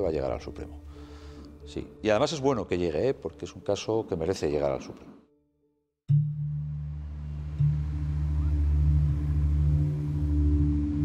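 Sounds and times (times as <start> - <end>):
low sustained music drone: 6.1 - 11.0.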